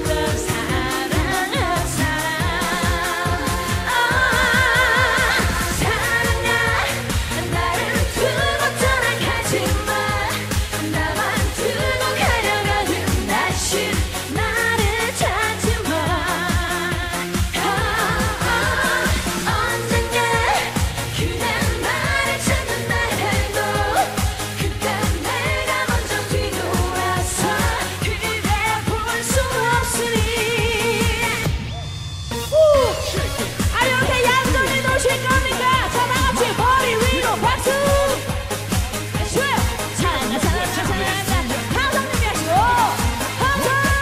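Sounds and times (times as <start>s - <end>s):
woman singing into microphone: 0.0s - 31.5s, 32.6s - 38.4s, 39.2s - 44.0s
dance-pop accompaniment: 0.0s - 44.0s.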